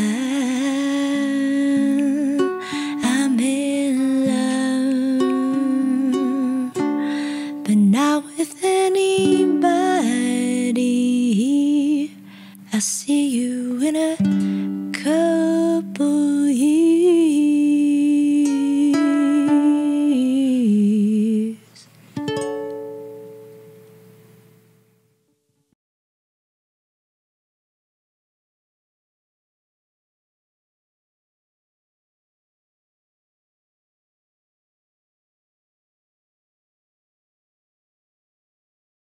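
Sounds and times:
woman humming: 0.0s - 6.9s
ukulele: 0.0s - 24.7s.

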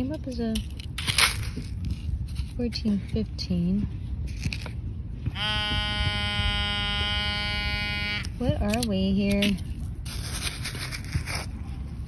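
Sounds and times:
pinpointer electronic buzz: 5.3s - 8.8s.

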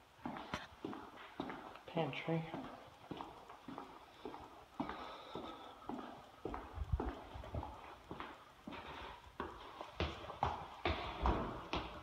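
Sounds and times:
footsteps on hardwood floor: 0.0s - 12.0s.

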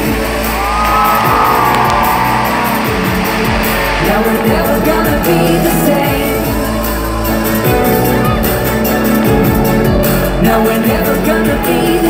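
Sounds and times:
live band instrumental music: 0.0s - 12.0s.

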